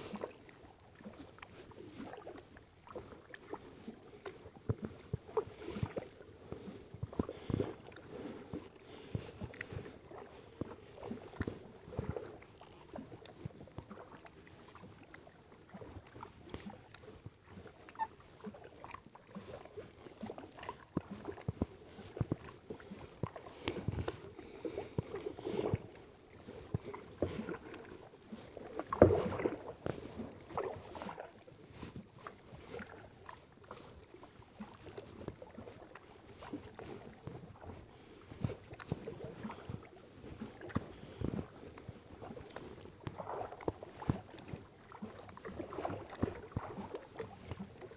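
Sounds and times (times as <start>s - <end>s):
paddle splashes and drips: 0.0s - 47.9s
water lapping against hull: 0.0s - 47.9s.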